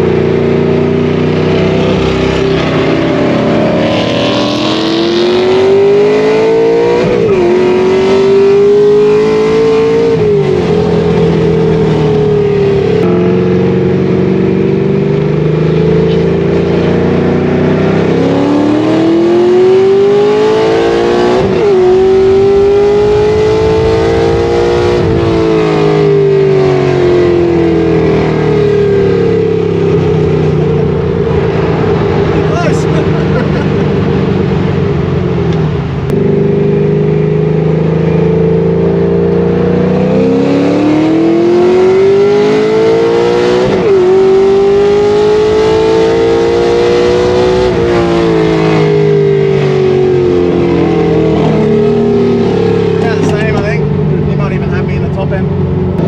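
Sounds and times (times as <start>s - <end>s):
car engine accelerating through gears: 0.0s - 56.0s.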